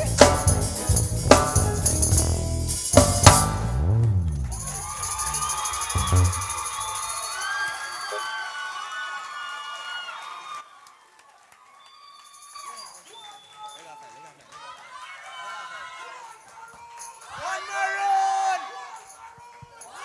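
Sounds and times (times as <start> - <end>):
band playing drum hits: 0.0 - 7.0
audience cheering and whooping: 4.0 - 19.0.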